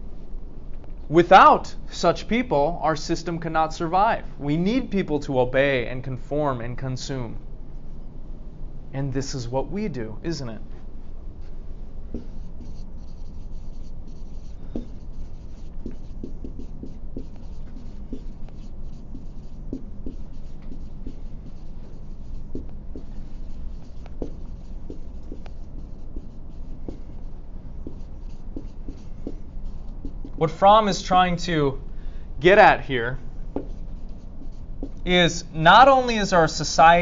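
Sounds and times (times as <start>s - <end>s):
low room hum: 0.0s - 37.0s
writing strokes on a board: 11.4s - 30.5s, 33.4s - 35.5s.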